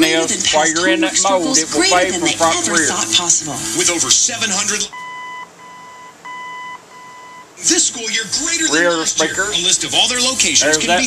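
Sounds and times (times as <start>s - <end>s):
radio beeping from speaker: 0.0s - 7.4s.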